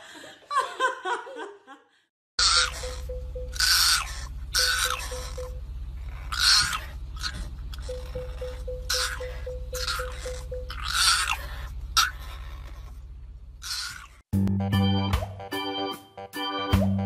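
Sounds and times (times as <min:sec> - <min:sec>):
puppy howling: 0:02.4 - 0:13.0.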